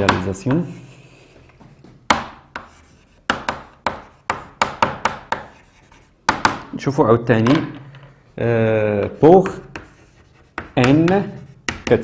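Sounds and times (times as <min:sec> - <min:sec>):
chalk tapping on blackboard: 0:00.0 - 0:06.7, 0:09.0 - 0:12.0.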